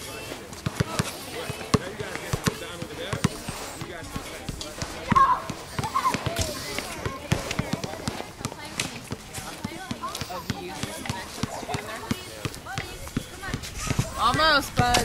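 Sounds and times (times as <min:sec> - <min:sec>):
people's voices: 0:00.0 - 0:15.0
basketball bouncing on hard court: 0:00.6 - 0:15.0.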